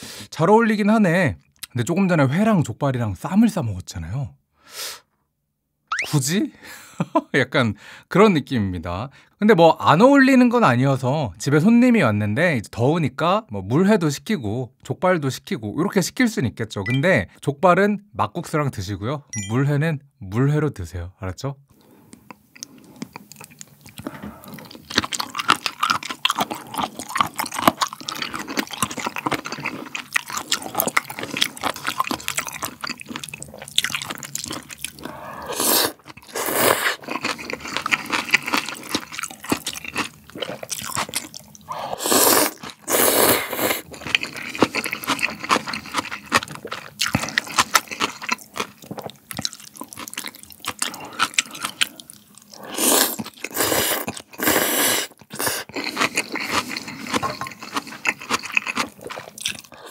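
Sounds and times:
crunchy chewing: 22.1 - 59.9
noodle slurping: 34.5 - 38.9, 41.6 - 46.4, 49.8 - 59.9.

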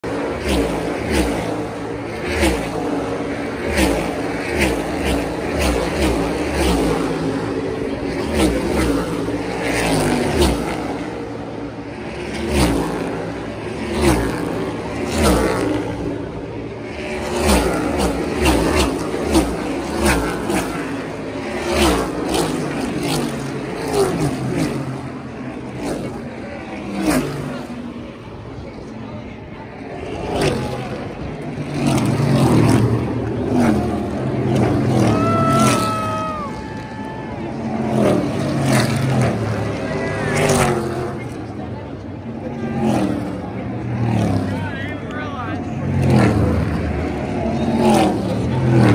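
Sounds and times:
race car engines passing: 0.0 - 48.9.

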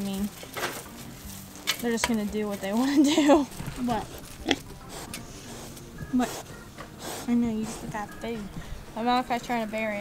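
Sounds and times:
pig rooting in wood chips: 0.0 - 8.4
pig snort: 4.0 - 8.0.

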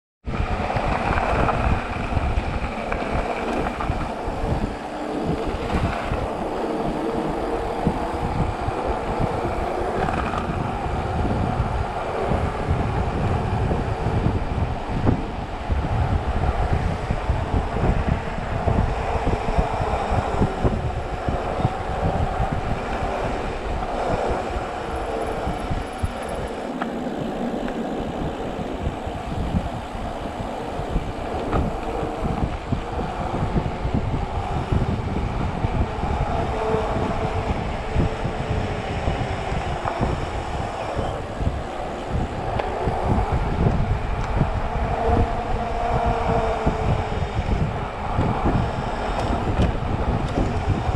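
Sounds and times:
wind on microphone: 0.2 - 50.9
bike tyres rumbling: 0.3 - 50.9.

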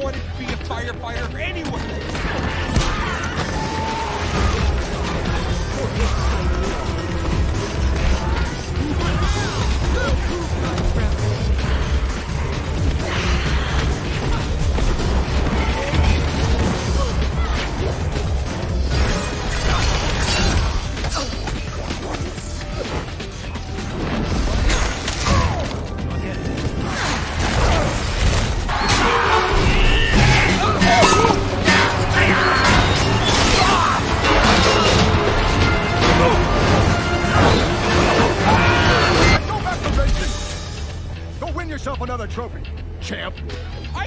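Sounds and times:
background music: 0.0 - 44.0
dramatic orchestral score: 0.0 - 44.0
fight sound effects: 26.8 - 40.4.

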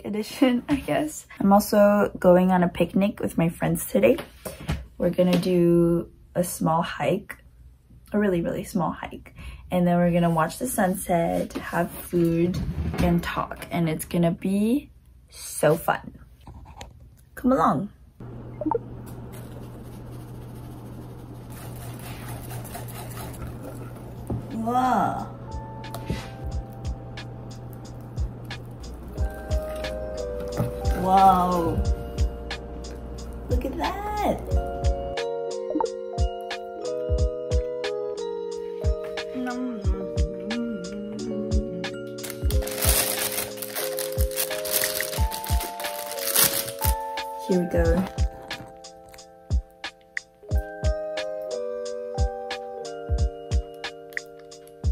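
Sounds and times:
steady low hum: 18.1 - 35.2
whisk scraping batter in bowl: 19.5 - 24.1
spatula scooping thick mixture: 21.4 - 24.1
lo-fi music with soft drum beat: 25.5 - 43.0, 46.8 - 54.9
plastic piping bag crinkling: 42.2 - 49.2.

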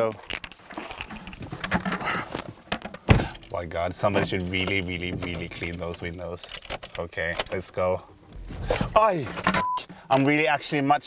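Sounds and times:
small clicks and knocks: 4.2 - 7.6.

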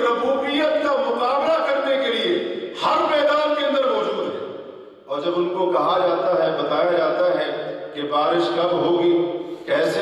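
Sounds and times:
man lecturing: 0.0 - 4.4, 5.1 - 10.0.

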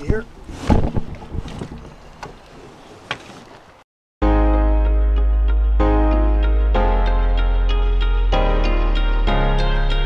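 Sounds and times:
knocks and thump in inflatable dinghy: 0.0 - 3.8.

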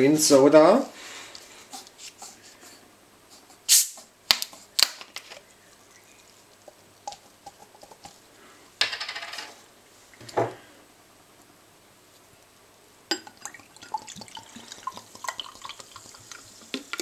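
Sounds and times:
rustling hiss: 0.2 - 8.8
soda bottle gas hiss: 3.6 - 4.1.

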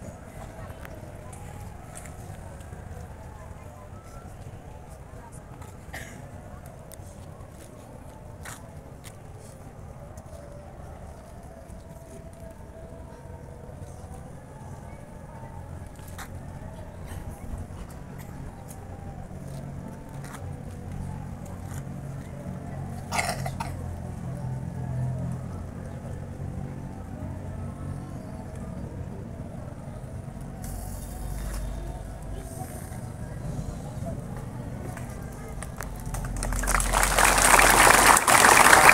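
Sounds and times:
crowd murmur: 0.0 - 38.9
distant voices: 0.0 - 38.9.

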